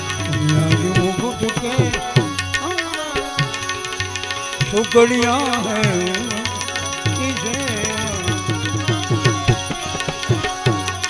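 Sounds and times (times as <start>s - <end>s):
harmonium chords: 0.0s - 11.0s
small hand cymbals ticking: 0.0s - 11.0s
tabla playing quick beat: 0.0s - 11.0s.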